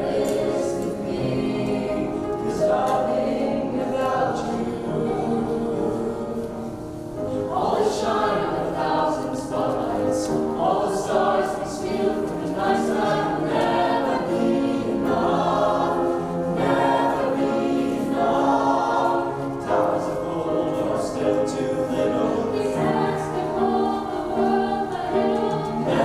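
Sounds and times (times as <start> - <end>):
choir singing slow piece: 0.0 - 26.0.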